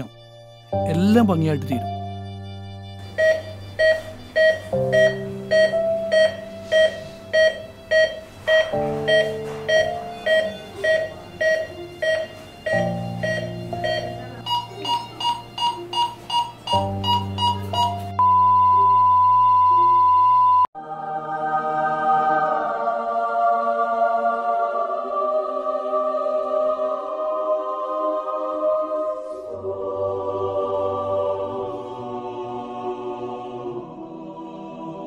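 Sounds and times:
soft sustained music: 0.0s - 18.2s, 20.8s - 35.0s
monitor flatline tone: 3.1s - 20.7s
patient monitor beeping: 3.1s - 20.7s.

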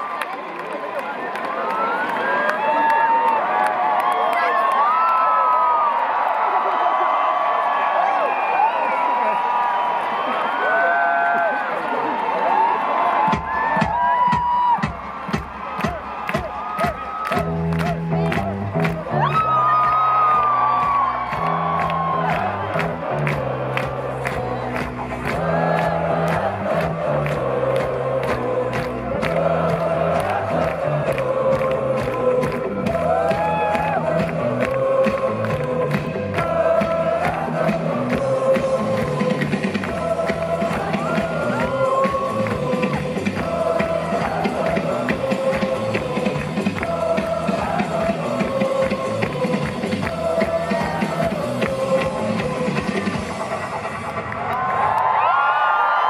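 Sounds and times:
crowd cheering and whooping: 0.0s - 31.7s, 32.6s - 56.0s
drum kit playing a steady beat: 13.3s - 19.0s, 31.4s - 54.0s
bass line: 17.4s - 54.2s.

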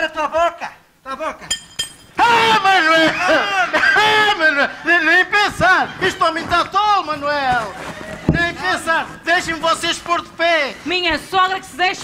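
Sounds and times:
hammer metallic clink: 1.5s - 2.2s.

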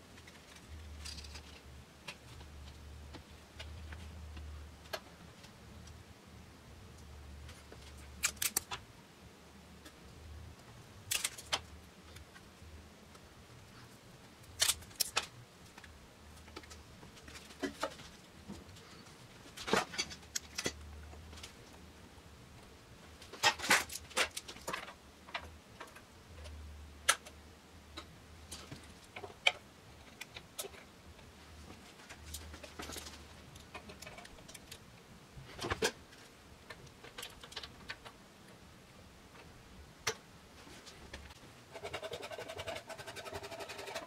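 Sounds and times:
faint low hum: 0.0s - 44.0s.

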